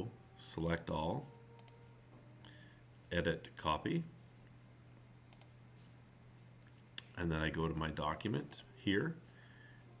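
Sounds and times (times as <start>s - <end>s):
low electrical hum: 0.0s - 10.0s
computer mouse click: 5.3s - 5.5s.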